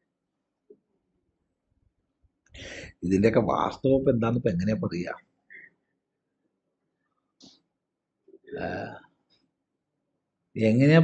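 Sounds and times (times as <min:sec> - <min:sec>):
man's throaty vocal sound: 0:08.5 - 0:09.0.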